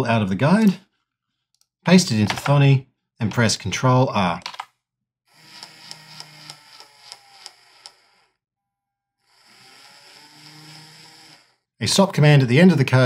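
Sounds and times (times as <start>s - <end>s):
small gear motor whirring: 5.3s - 8.4s, 9.2s - 11.7s.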